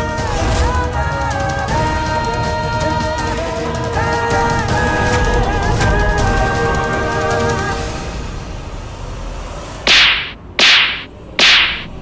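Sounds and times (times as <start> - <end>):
whip cracks: 9.9 - 12.0.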